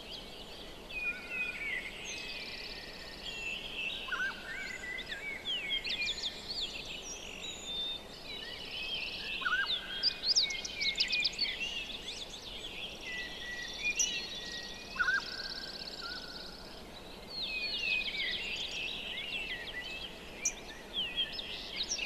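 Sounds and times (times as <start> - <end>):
birds singing and calling: 0.0 - 22.0
soft steady hiss: 0.0 - 22.0.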